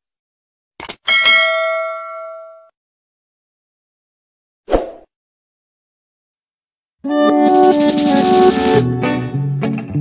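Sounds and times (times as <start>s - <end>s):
bright bell ding: 1.1s - 2.7s.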